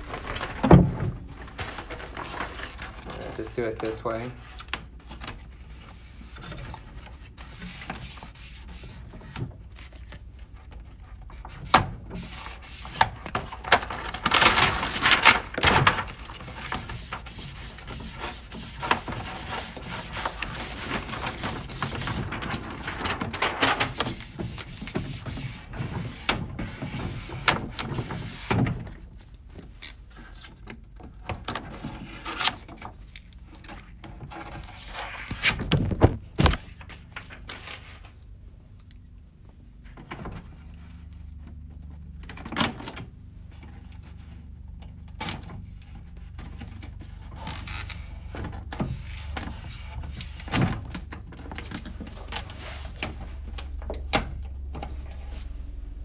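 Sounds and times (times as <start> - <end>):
paper backing rustling: 0.0 - 11.6, 12.2 - 28.4
film rubbed down by hand: 16.2 - 25.8.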